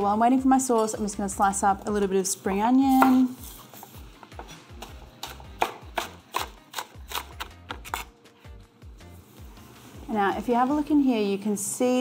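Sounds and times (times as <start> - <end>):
knife chopping on wooden board: 2.9 - 8.1.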